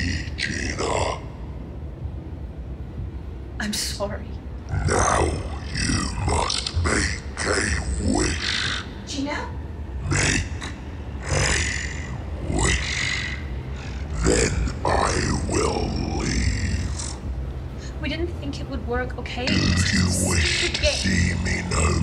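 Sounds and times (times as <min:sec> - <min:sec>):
steady low rumble: 0:00.0 - 0:22.0
person speaking in bursts: 0:19.4 - 0:22.0.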